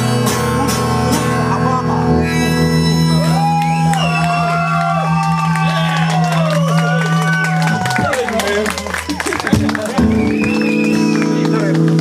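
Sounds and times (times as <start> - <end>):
wailing sliding guitar tones: 0.0 - 8.3.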